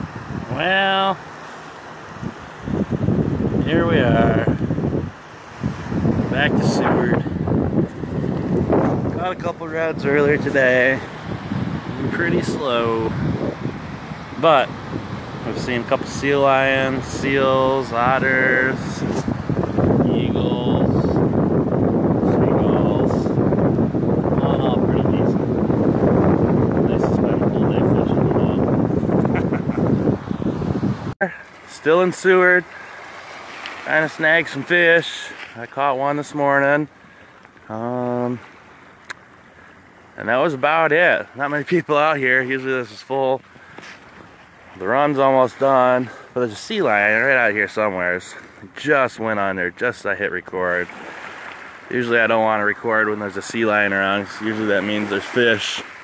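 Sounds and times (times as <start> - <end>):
wind buffeting microphone: 0.0 - 0.9, 2.0 - 56.0.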